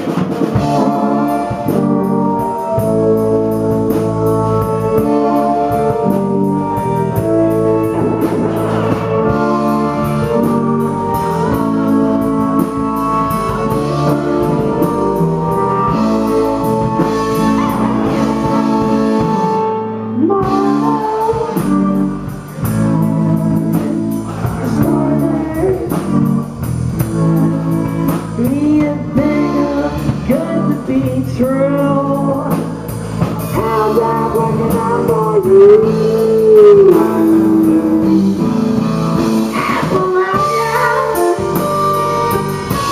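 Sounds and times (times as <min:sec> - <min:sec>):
drum kit: 0:00.0 - 0:42.9
electric guitar: 0:00.0 - 0:42.9
person singing: 0:00.0 - 0:42.9.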